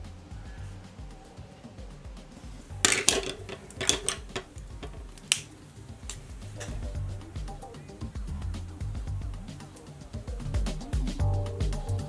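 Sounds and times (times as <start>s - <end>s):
quiet background music: 0.0s - 12.0s
plastic makeup items clicking: 2.9s - 5.5s.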